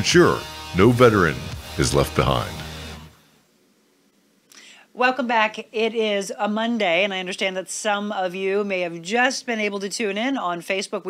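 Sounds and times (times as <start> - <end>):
person drawing breath: 4.5 - 4.9.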